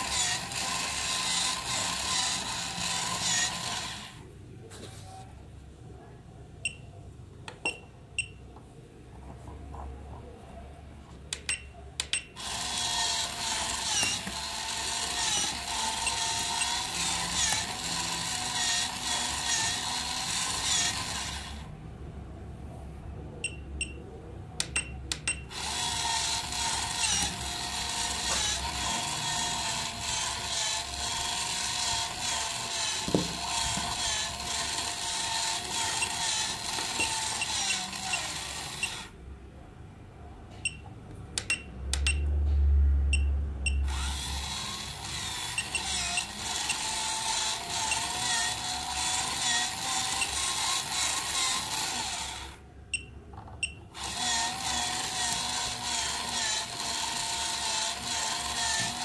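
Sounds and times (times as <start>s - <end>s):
gear motor whirring: 0.0s - 4.2s, 12.4s - 21.7s, 25.5s - 39.1s, 43.8s - 52.6s, 53.9s - 59.0s.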